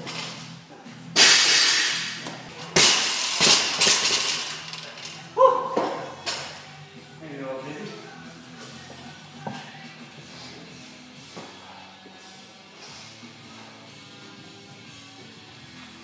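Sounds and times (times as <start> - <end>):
background music: 0.0 - 16.0
barbell crashing with metallic clatter: 1.2 - 4.8.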